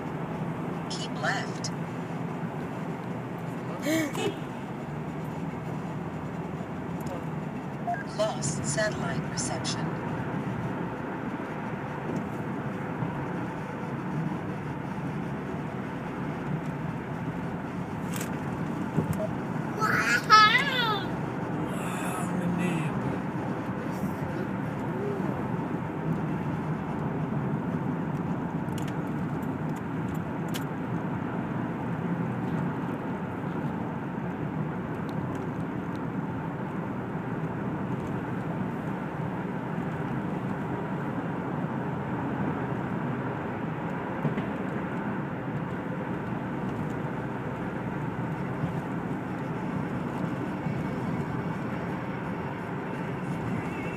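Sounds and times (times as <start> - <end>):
car road and engine noise: 0.0 - 53.9.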